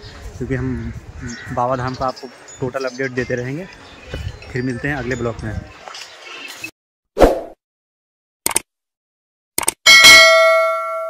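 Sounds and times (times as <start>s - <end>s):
quick clicks: 8.4s - 8.7s, 9.6s - 9.8s
bright bell ding: 9.9s - 11.0s.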